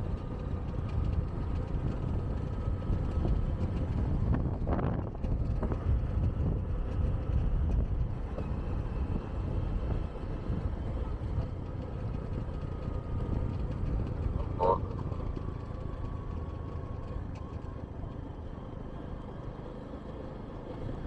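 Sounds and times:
vehicle road noise: 0.0s - 21.0s
wind: 0.0s - 21.0s.

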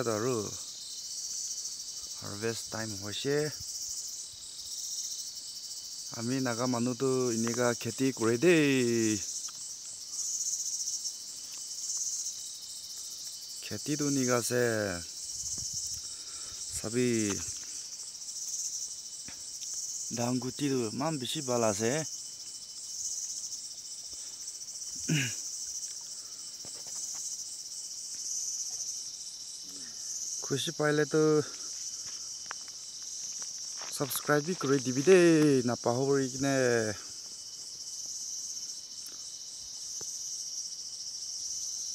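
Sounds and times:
high-pitched insect chorus: 0.0s - 41.9s.

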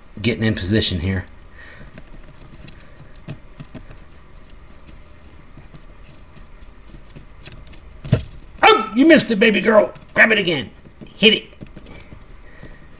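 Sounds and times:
low steady hum: 0.0s - 12.9s.

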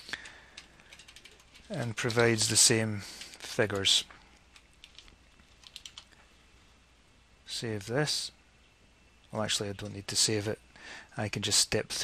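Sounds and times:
keyboard keystrokes: 4.5s - 6.1s.

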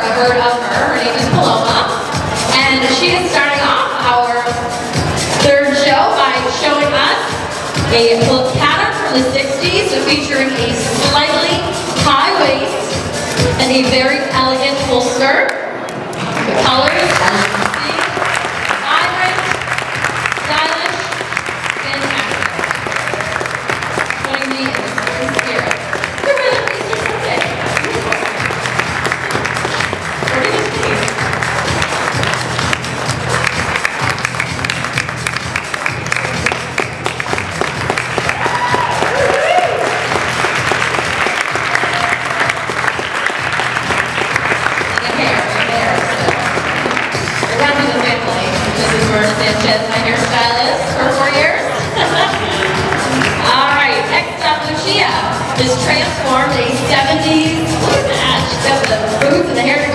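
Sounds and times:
background music: 0.0s - 59.9s
audience applauding: 15.9s - 49.1s, 52.0s - 53.4s
crowd voices: 22.0s - 59.9s.

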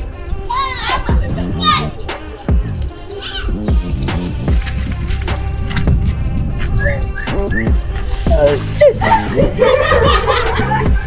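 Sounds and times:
background music with heavy bass: 0.0s - 11.0s.

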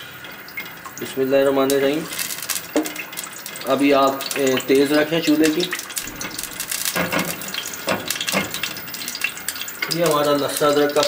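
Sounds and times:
oil crackling and sizzling: 0.0s - 11.0s
spatula stirring oil: 2.1s - 10.0s.

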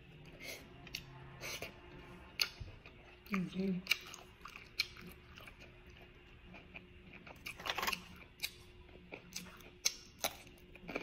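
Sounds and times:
person chewing: 0.2s - 11.0s.

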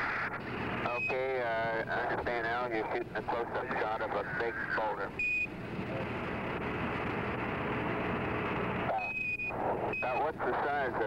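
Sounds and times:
radio static hiss: 0.0s - 8.0s, 8.6s - 11.0s.

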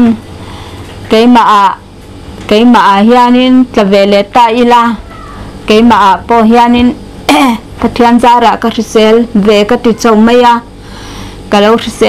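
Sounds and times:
woman speaking: 0.0s - 0.2s, 1.1s - 1.9s, 2.5s - 10.7s, 11.5s - 12.0s.

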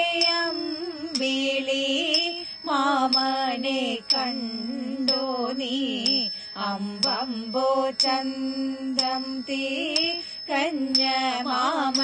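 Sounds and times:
women singing chant-like melody: 0.0s - 12.0s.

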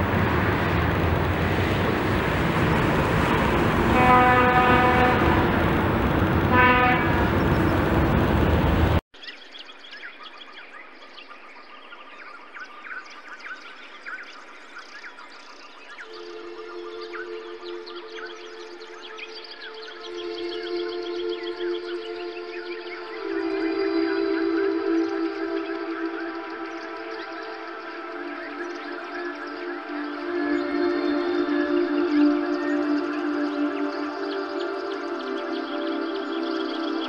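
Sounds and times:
highway traffic: 0.0s - 9.0s
vehicle horn honking: 3.8s - 5.7s, 6.3s - 8.0s
quiet ambient music: 9.9s - 37.0s.

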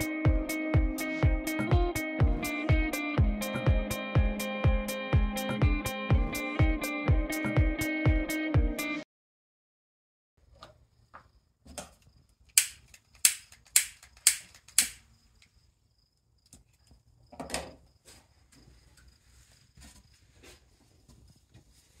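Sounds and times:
sharp clicks: 12.5s - 15.5s.

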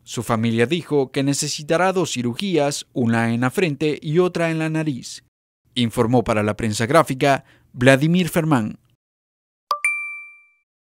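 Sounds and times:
bright two-pitched ding: 9.7s - 10.6s.

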